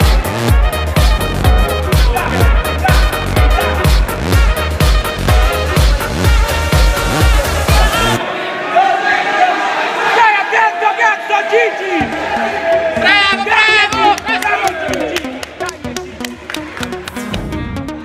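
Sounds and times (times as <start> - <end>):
bass line: 0.0 - 8.2, 16.8 - 18.0
electronic dance music: 0.0 - 8.2, 11.5 - 18.0
heavy beat: 0.0 - 8.2.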